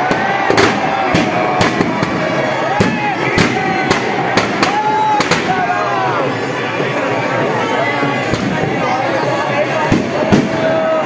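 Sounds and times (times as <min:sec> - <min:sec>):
crowd shouting: 0:00.0 - 0:11.0
firecrackers banging: 0:00.0 - 0:11.0.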